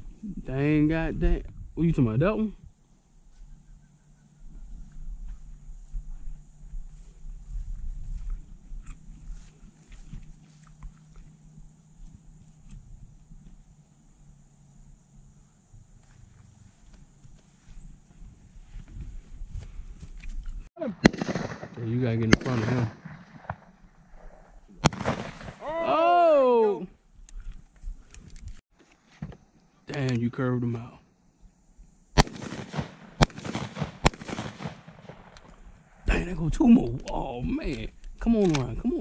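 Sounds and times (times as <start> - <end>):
loud shotgun shots: 20.8 - 23.8, 24.8 - 25.7, 32.2 - 35.4
long drawn-out shout: 25.6 - 26.9
men calling out: 25.6 - 27.0.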